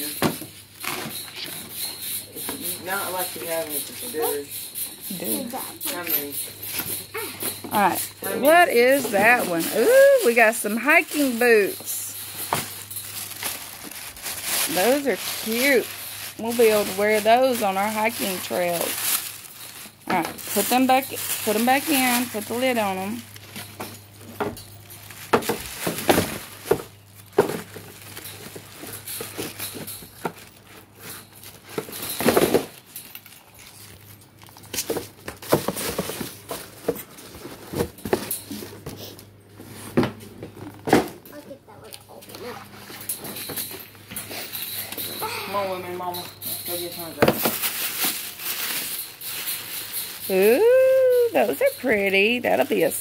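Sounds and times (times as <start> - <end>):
tissue paper rustling: 7.0 - 23.8, 45.2 - 53.0.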